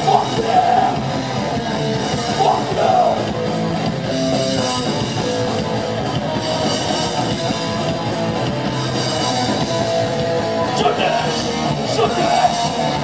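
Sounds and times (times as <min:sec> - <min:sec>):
drum kit: 0:00.0 - 0:13.0
electric guitar: 0:00.0 - 0:13.0.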